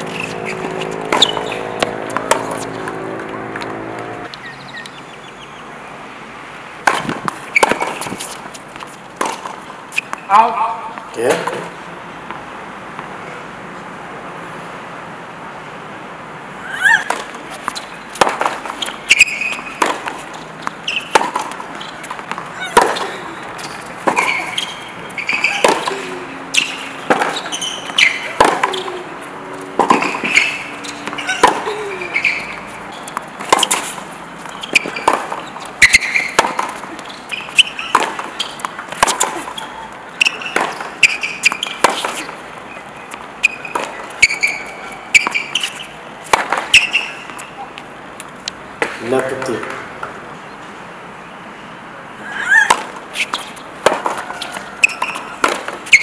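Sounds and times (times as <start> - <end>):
tennis racket hitting ball: 0.0 - 4.3, 6.8 - 10.2, 17.0 - 42.4, 43.1 - 47.4, 52.6 - 56.0
tennis ball bouncing: 0.0 - 4.4, 6.8 - 11.6, 16.9 - 50.2, 52.6 - 56.0
shoe squeaks: 0.0 - 4.9, 7.3 - 9.0, 9.9 - 10.3, 16.7 - 46.0, 46.6 - 47.7, 52.3 - 56.0.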